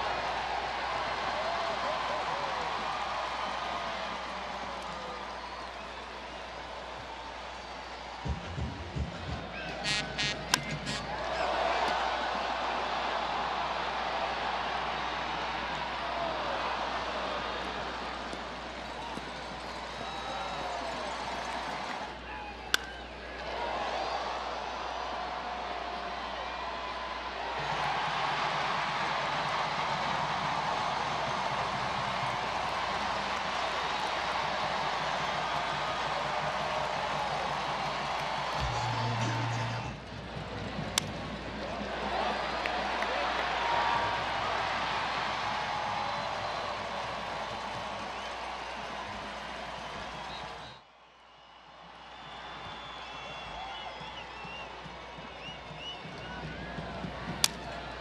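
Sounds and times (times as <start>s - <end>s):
crowd cheering: 0.0s - 58.0s.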